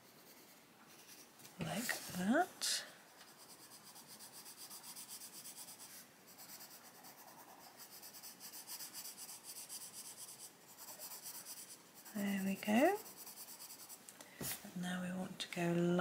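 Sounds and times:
pencil scratching on paper: 0.0s - 2.4s, 3.1s - 14.0s.

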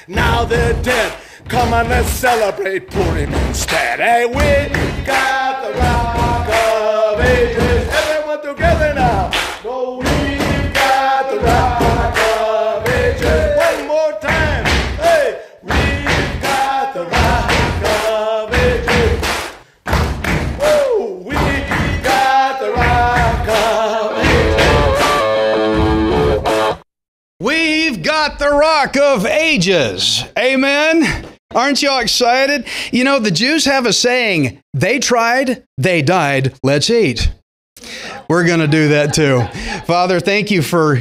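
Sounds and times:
man rapping: 0.0s - 19.2s, 20.6s - 24.7s, 27.4s - 37.4s, 38.2s - 41.0s
thumping beat: 0.0s - 26.8s, 38.4s - 40.1s.

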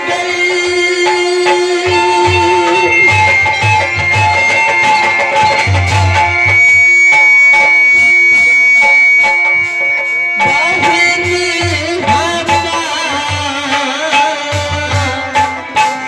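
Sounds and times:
drums beating rhythmically: 0.0s - 16.0s
harmonium holding long notes: 0.0s - 16.0s.

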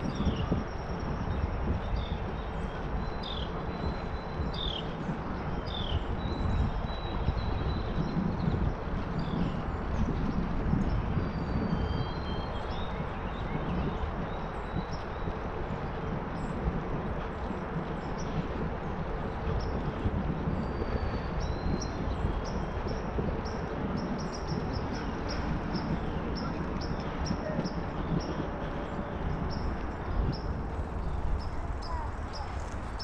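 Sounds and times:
bicycle tyres rolling on asphalt: 0.0s - 33.0s
wind on microphone: 0.0s - 33.0s.

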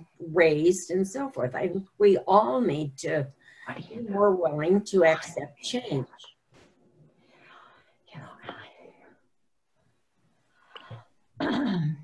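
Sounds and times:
breathy whisper: 7.3s - 9.2s.

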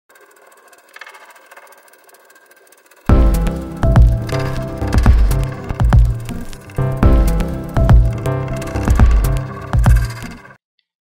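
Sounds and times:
fast rattling whirr: 0.0s - 6.8s.

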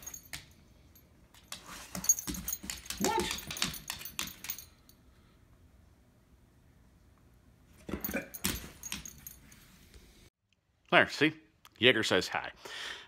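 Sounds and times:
dog collar tags jingling: 0.0s - 5.0s, 7.9s - 9.6s.

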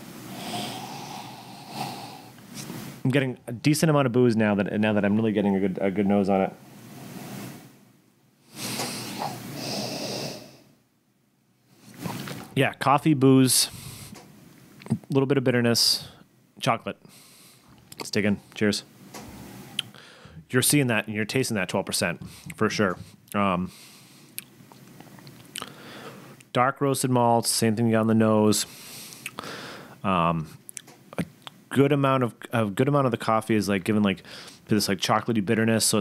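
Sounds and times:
person sniffing: 0.3s - 2.8s, 8.5s - 10.7s, 34.3s - 34.6s.

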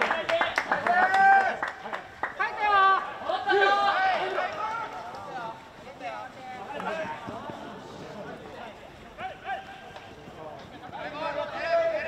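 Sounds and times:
players shouting calls: 0.0s - 12.0s.

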